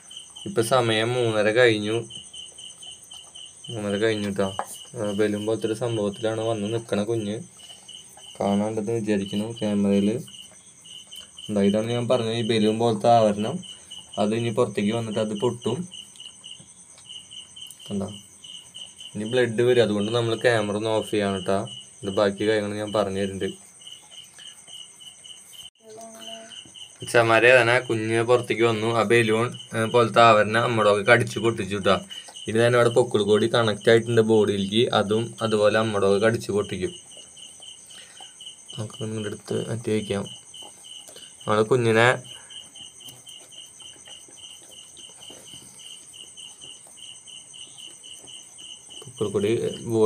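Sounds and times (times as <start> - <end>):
cricket chirping: 0.0 - 50.0.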